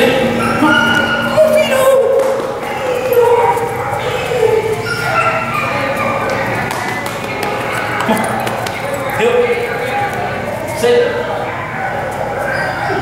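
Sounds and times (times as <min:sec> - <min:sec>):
dog making pitched calls: 0:00.3 - 0:06.6.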